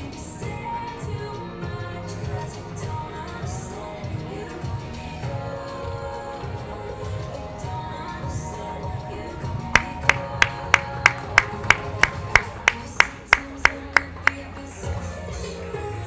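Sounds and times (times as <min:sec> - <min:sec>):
pop music playing: 0:00.0 - 0:16.0
sharp hand claps: 0:09.8 - 0:14.7.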